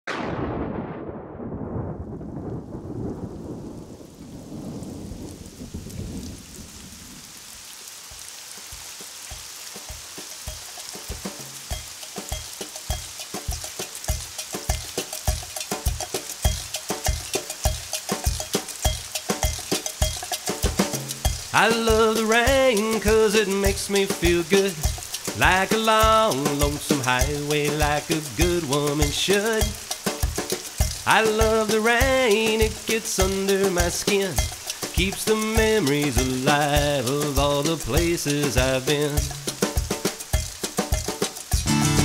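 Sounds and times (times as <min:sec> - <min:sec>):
thunder rumbling: 0:00.0 - 0:07.7, 0:21.2 - 0:37.0
steady rain: 0:00.1 - 0:42.0
rhythmic beat: 0:09.3 - 0:42.0.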